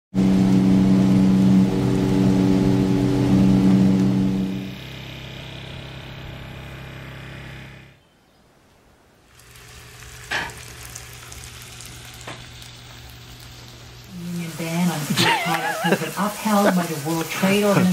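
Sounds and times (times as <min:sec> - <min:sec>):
boat engine running: 0:00.1 - 0:08.0
low hum: 0:00.2 - 0:08.0.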